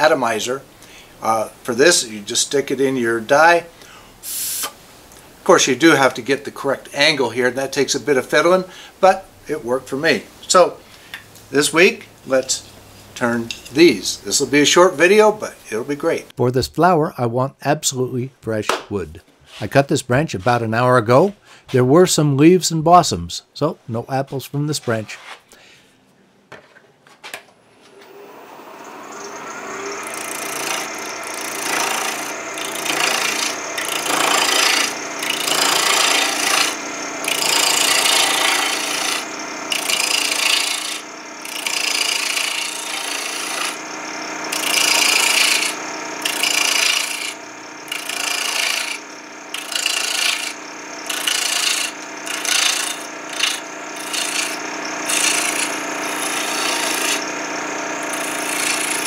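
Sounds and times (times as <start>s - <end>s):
chisel cutting spinning wood: 0.0s - 3.7s, 4.9s - 10.8s, 11.4s - 16.3s, 27.9s - 59.0s
wood lathe humming: 0.0s - 16.3s, 27.9s - 59.0s.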